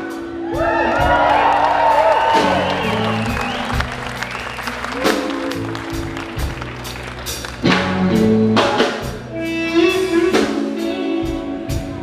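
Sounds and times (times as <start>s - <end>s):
blues-rock band playing live: 0.0s - 12.0s
crowd applauding: 0.5s - 8.2s
electric guitar bending notes: 2.3s - 12.0s.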